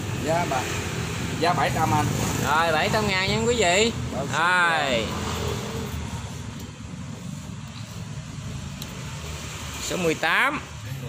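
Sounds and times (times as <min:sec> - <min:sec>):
vehicle engine rumbling: 0:00.0 - 0:11.0.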